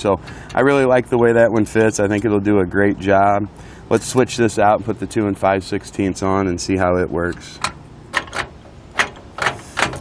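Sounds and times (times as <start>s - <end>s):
metallic lock clicks: 7.6s - 10.0s.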